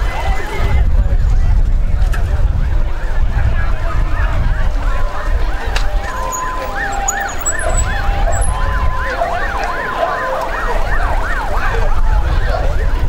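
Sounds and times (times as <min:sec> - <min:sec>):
wailing electronic siren: 0:02.6 - 0:13.0
two-tone siren: 0:02.9 - 0:13.0.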